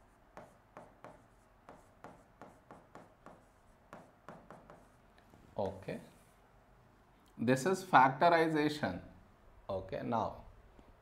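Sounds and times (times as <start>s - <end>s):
pen tapping and scratching on whiteboard: 0.0s - 5.0s.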